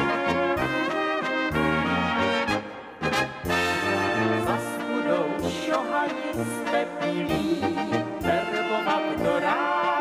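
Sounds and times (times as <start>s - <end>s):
brass band playing dance tune: 0.0s - 10.0s.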